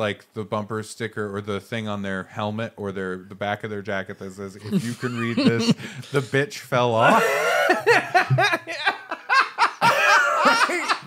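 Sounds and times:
men laughing: 4.6s - 6.3s, 7.0s - 11.0s.

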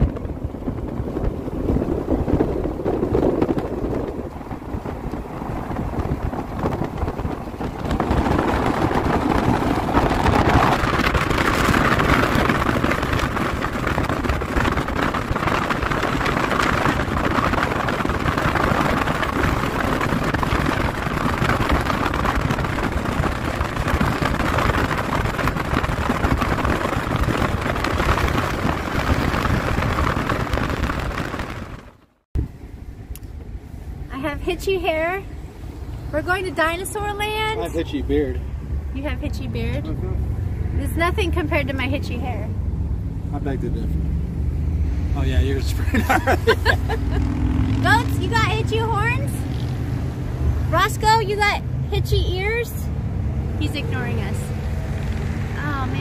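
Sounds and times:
car road noise: 0.0s - 56.0s
wind buffeting microphone: 0.0s - 56.0s.

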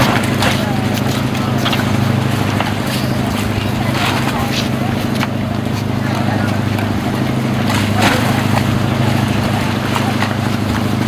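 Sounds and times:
motorboat engine idling: 0.0s - 11.0s.

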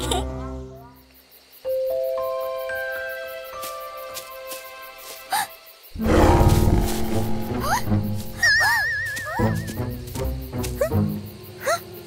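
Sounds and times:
cartoon background music: 6.0s - 11.8s.

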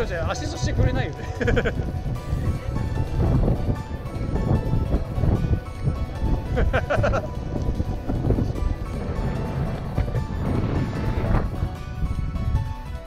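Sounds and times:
background music with sustained notes: 0.0s - 13.0s
wind rumble on microphone: 0.0s - 13.0s.

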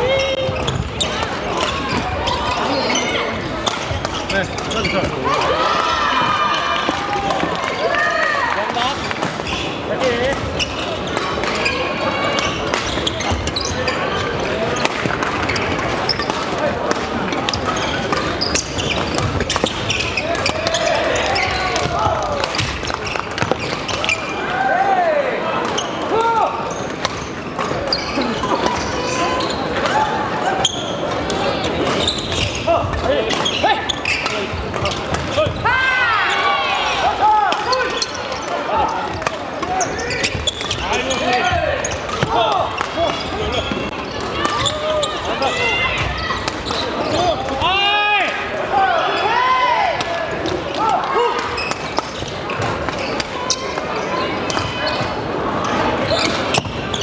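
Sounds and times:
shoes squeaking on wooden floor: 0.0s - 24.5s, 25.6s - 35.7s, 36.3s - 47.4s, 51.3s - 57.0s
many voices: 0.0s - 57.0s.

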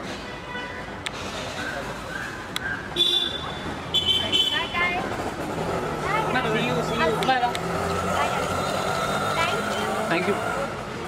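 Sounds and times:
steady vehicle hum: 0.0s - 11.0s.

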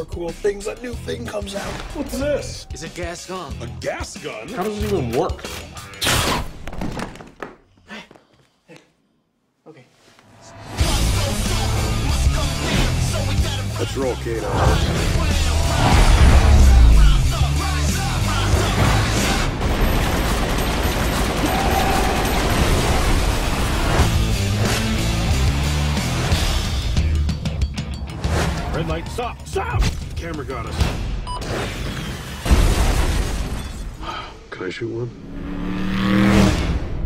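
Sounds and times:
trailer music: 10.4s - 32.5s, 35.0s - 37.0s
sustained rush of noise: 14.5s - 17.7s.

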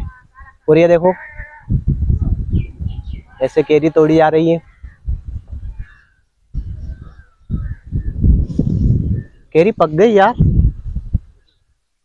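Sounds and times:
low rumble on microphone: 1.7s - 3.3s, 4.8s - 11.4s
crows cawing: 4.6s - 5.0s.

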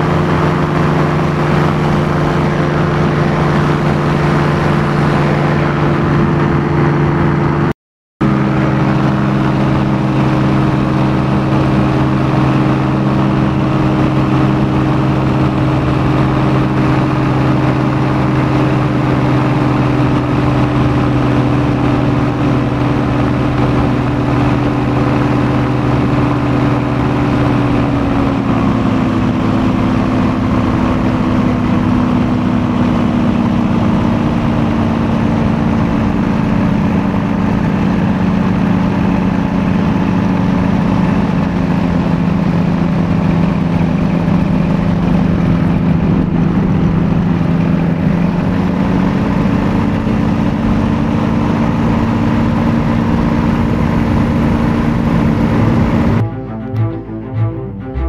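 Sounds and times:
paramotor engine running: 0.0s - 58.0s.

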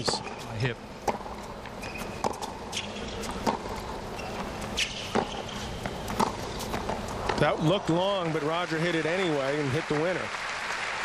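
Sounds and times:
shoes squeaking on court: 0.0s - 7.8s
tennis ball struck by racquets: 1.0s - 4.0s, 4.6s - 7.4s.

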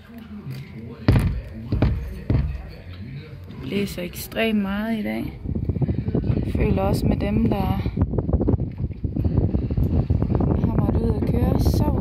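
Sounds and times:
faint background voices: 0.0s - 8.0s
heavy thumps: 1.0s - 2.9s.

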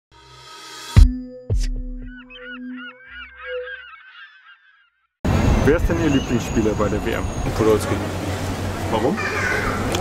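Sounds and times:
bird-like cries: 2.1s - 5.2s, 9.1s - 9.9s.

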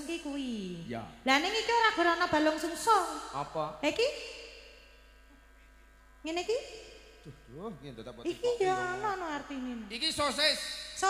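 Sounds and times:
faint sound system hum: 0.0s - 11.0s.

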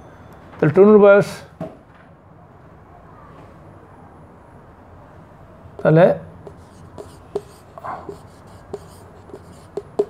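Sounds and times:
marker writing on a whiteboard: 5.7s - 10.0s.

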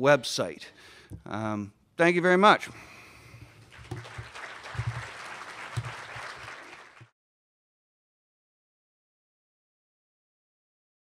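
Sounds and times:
audience applauding: 3.6s - 7.1s.

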